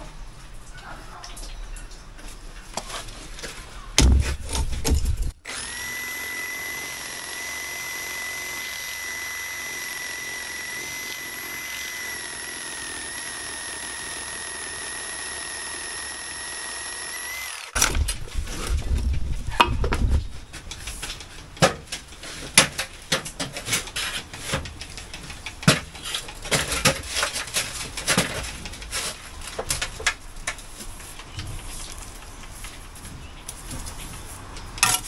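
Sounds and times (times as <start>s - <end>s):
knocks and scrapes: 0.0s - 5.4s, 17.8s - 35.0s
reciprocating saw cutting concrete: 5.5s - 18.0s.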